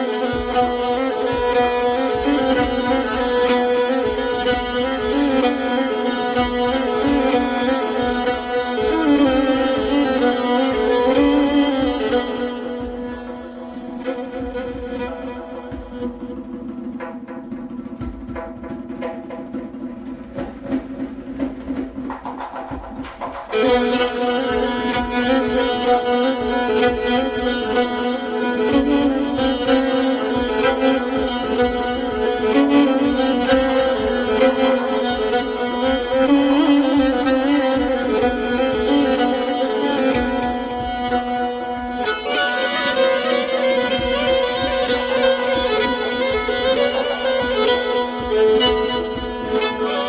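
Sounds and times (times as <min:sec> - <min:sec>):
solo violin playing: 0:00.0 - 0:17.4, 0:23.5 - 0:50.0.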